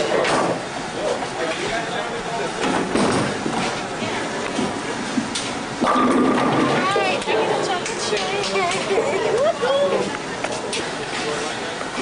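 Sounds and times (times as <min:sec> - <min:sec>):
background chatter: 0:00.0 - 0:12.0
bowling alley noise: 0:00.0 - 0:12.0.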